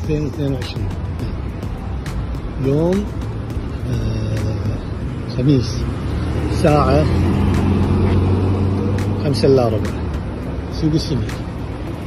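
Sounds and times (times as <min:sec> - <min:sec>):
pickup truck engine driving past: 0:03.1 - 0:10.7.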